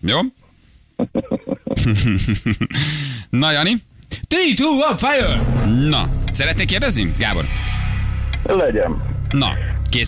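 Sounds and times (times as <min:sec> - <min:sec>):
radio jingle voices over music: 0:05.2 - 0:10.0.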